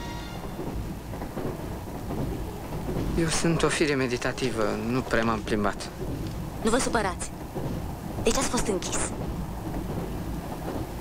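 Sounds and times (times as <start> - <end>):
train rumble inside compartment: 0.0 - 11.0.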